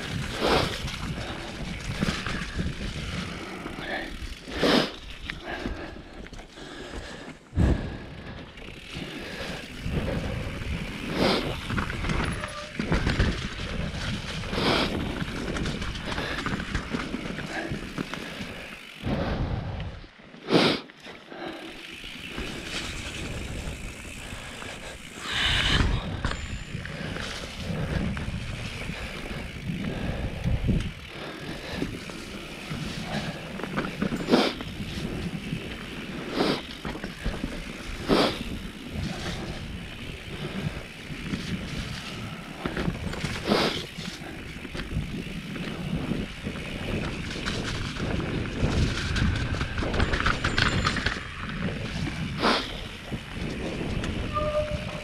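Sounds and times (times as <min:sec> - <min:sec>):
bike rattling: 0:00.0 - 0:55.0
bike tyres rumbling on dirt: 0:00.0 - 0:55.0.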